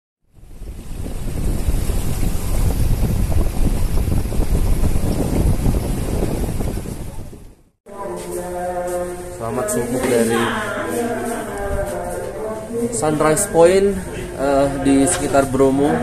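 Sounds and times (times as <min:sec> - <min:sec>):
wind buffeting microphone: 0:00.3 - 0:07.7.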